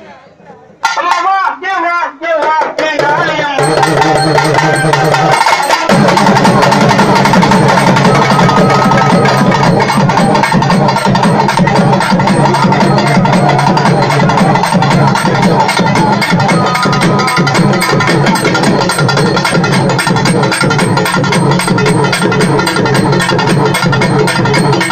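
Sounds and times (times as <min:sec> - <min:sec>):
drum ensemble playing fast rhythm: 0:00.8 - 0:01.8, 0:02.4 - 0:24.9.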